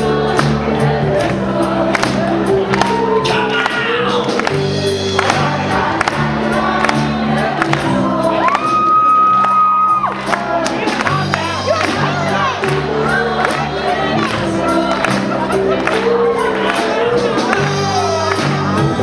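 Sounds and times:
crowd noise: 0:00.0 - 0:19.0
live rock band playing: 0:00.0 - 0:19.0.

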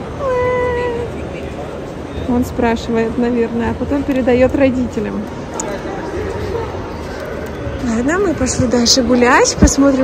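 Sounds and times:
murmur of busy indoor space: 0:00.0 - 0:10.0.

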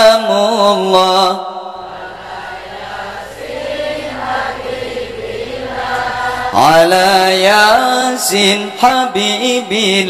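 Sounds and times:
crowd singing over pa: 0:00.0 - 0:10.0.

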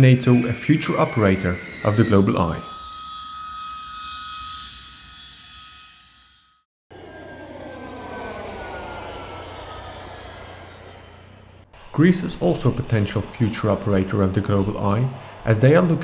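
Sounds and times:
jet turbine whine: 0:00.0 - 0:16.0
jet passing by: 0:06.9 - 0:16.0.

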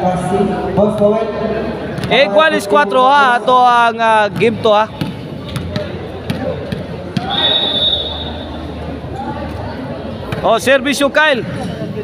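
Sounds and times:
crowd chatter echoing: 0:00.0 - 0:12.0
ball bouncing on concrete: 0:04.3 - 0:07.3
referee's whistle blast: 0:07.2 - 0:08.6.

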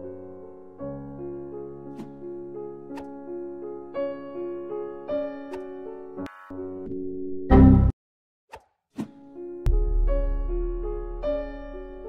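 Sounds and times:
piano music: 0:00.0 - 0:08.0, 0:09.2 - 0:12.0.

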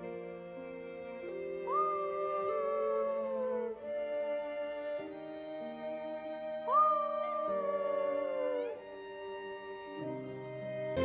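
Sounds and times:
soft film score music: 0:00.0 - 0:11.0
child howling like a wolf: 0:01.6 - 0:04.1, 0:06.7 - 0:09.0.

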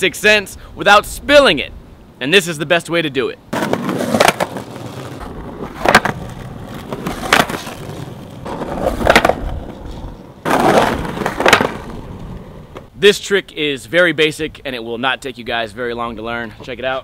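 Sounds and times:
skateboard clacking on curb: 0:03.5 - 0:09.8, 0:10.4 - 0:12.9
skateboard wheels rolling on concrete: 0:03.5 - 0:13.3.

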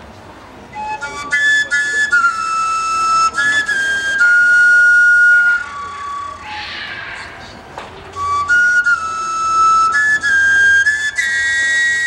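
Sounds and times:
folk flute playing: 0:00.6 - 0:07.3, 0:08.1 - 0:12.0.

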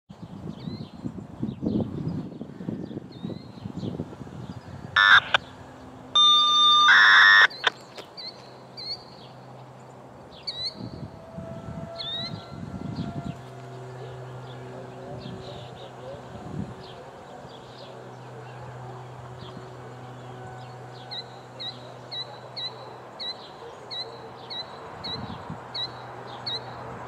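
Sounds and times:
small birds chirping: 0:00.4 - 0:11.1, 0:12.0 - 0:26.9
steady tone: 0:06.2 - 0:07.7.

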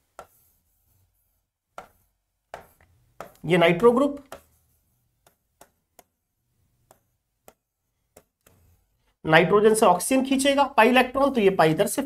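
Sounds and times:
pen tapping on screen: 0:00.1 - 0:00.5, 0:01.7 - 0:03.4, 0:04.2 - 0:04.6, 0:05.2 - 0:06.2, 0:06.8 - 0:08.8.

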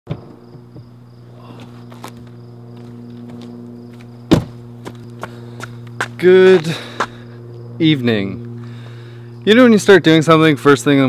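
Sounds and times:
insects chirping: 0:00.1 - 0:11.0
steady low hum: 0:00.1 - 0:11.0
loud sharp thump: 0:04.3 - 0:04.6.

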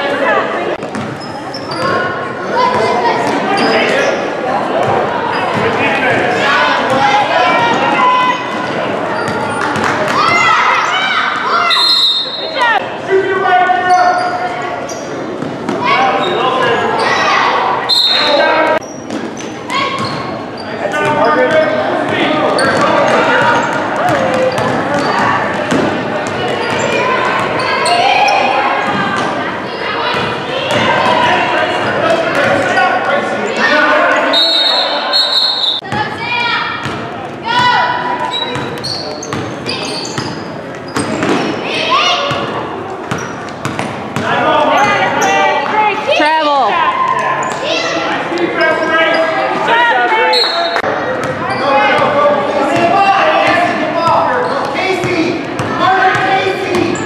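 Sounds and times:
voices calling out: 0:00.0 - 0:57.0
referee whistle blasts: 0:11.7 - 0:12.6, 0:17.9 - 0:18.4, 0:34.3 - 0:35.8.

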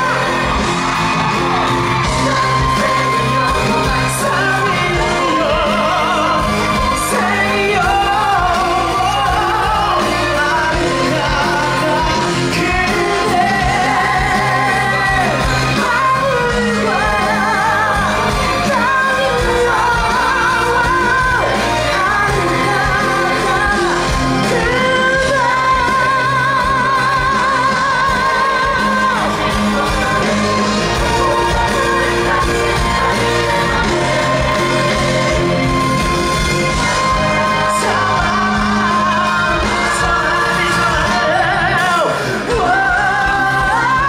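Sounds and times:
loud amplified band music: 0:00.0 - 0:44.0
man singing into a microphone: 0:02.0 - 0:35.5, 0:36.7 - 0:44.0.

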